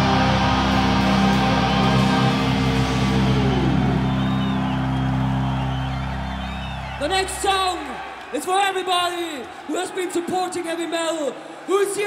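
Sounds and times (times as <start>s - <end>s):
heavy metal guitar chord ringing: 0.0s - 5.7s.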